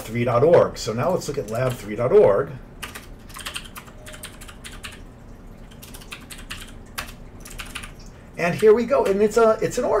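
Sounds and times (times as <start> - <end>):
computer keyboard typing: 1.0 - 9.5.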